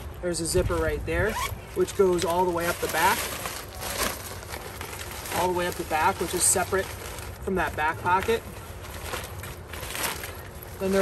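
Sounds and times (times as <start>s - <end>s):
fabric rustling and crinkling: 0.0s - 11.0s.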